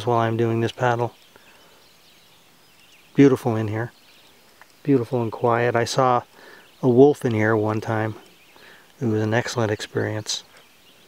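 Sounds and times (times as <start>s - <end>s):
faint outdoor ambience: 0.0s - 11.0s
man's voice: 9.0s - 10.5s.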